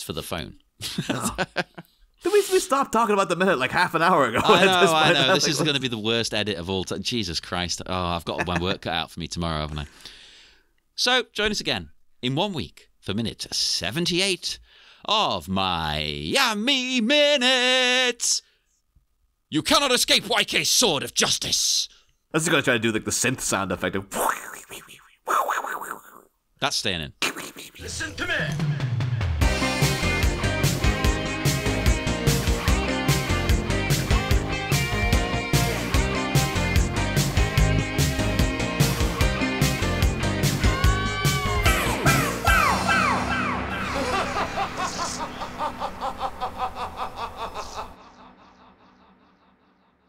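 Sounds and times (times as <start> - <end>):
man imitating synthesizer sound: 4.4 - 5.8, 8.4 - 8.8, 24.1 - 26.4, 27.2 - 28.0.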